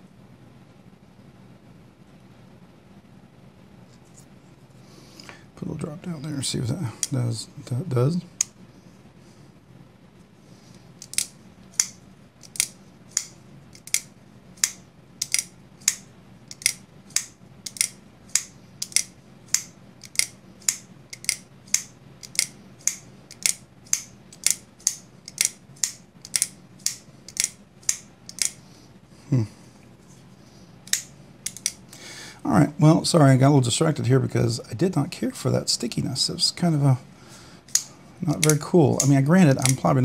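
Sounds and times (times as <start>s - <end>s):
knife blade clicking open and shut: 11.0s - 28.6s.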